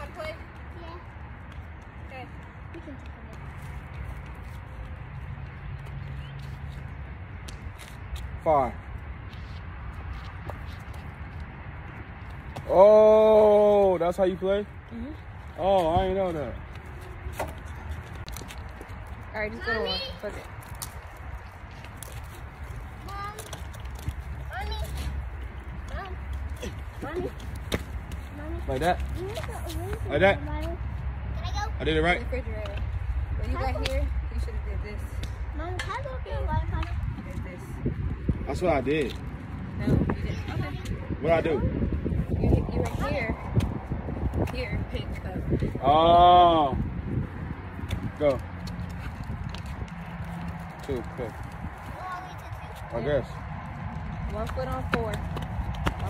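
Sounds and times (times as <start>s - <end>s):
footsteps hopping on concrete: 0.0s - 13.8s, 14.4s - 31.2s, 32.1s - 46.0s, 46.8s - 56.0s.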